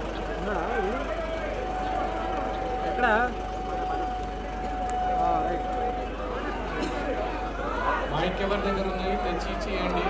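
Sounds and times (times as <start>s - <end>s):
men calling and talking: 0.0s - 10.0s.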